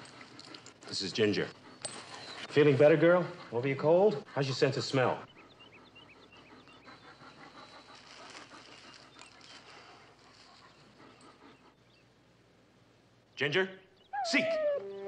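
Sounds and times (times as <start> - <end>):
dog panting softly: 0.0 - 12.0.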